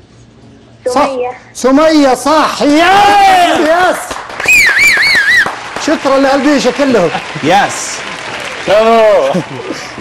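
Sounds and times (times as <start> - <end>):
loud high warbling whistle: 4.4 - 5.5.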